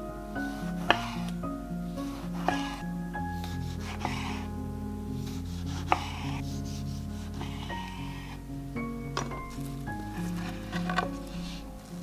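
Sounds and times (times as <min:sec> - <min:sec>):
background music with sustained notes: 0:00.0 - 0:12.0
knife slicing a tomato: 0:05.3 - 0:07.3.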